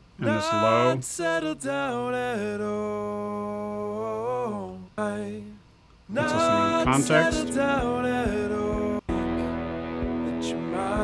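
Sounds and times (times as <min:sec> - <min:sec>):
low vocal harmony: 0:00.1 - 0:11.0
male lead vocal singing: 0:00.2 - 0:09.1, 0:10.3 - 0:11.0.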